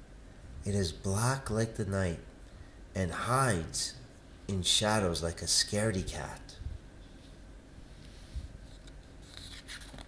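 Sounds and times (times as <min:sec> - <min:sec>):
paper rustling: 0:08.7 - 0:10.0.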